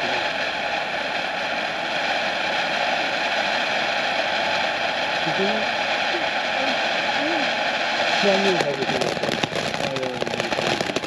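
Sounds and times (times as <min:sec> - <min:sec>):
fountain firework hissing: 0:00.0 - 0:11.0.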